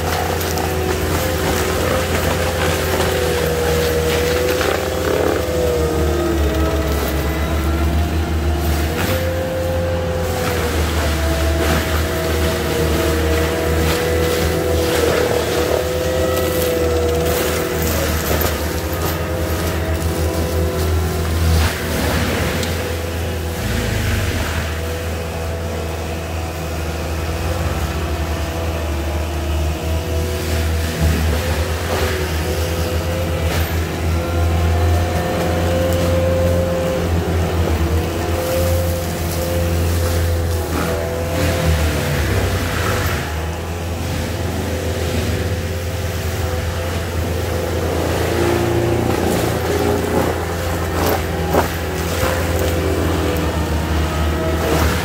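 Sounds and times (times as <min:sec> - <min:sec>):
diesel engine at high revs: 0:00.0 - 0:55.0
mulcher head whine: 0:00.0 - 0:55.0.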